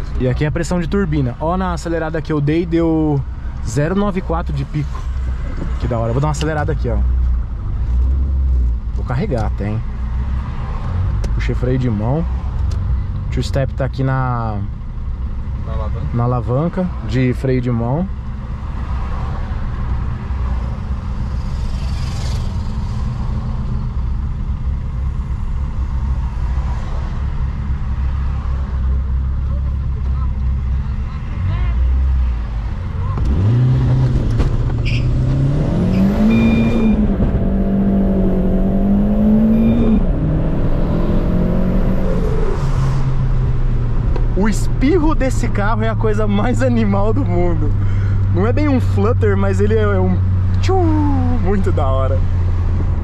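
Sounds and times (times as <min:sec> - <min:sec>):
car engine idling and revving: 0:00.0 - 0:53.0.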